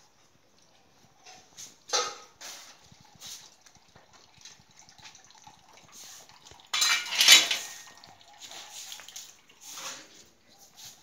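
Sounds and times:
pots clanking while washed: 0.7s - 11.0s.

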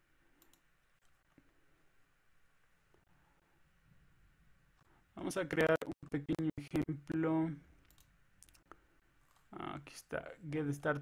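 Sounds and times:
computer mouse clicks: 0.4s - 1.3s, 7.8s - 9.5s.

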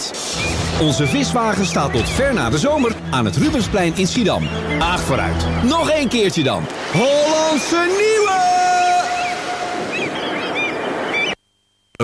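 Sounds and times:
surf: 0.0s - 11.4s
gulls calling: 0.2s - 11.4s.

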